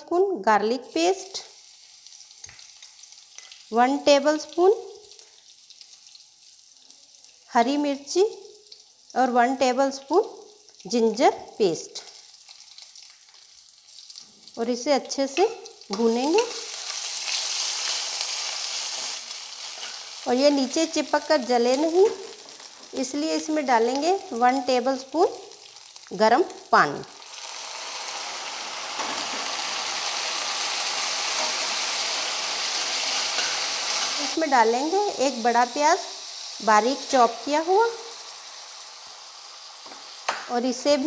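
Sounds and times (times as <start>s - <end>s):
spices sizzling in hot fat: 0.1s - 41.0s.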